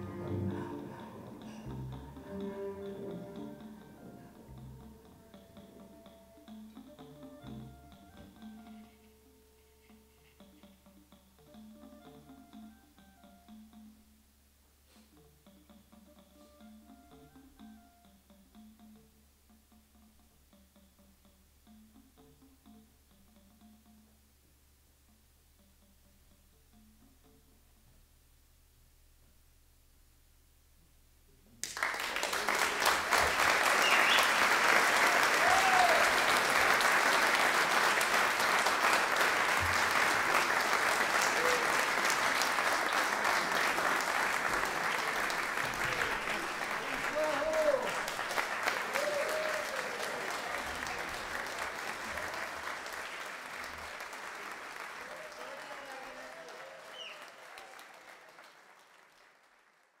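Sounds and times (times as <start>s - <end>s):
audience applauding: 31.6s - 60.0s.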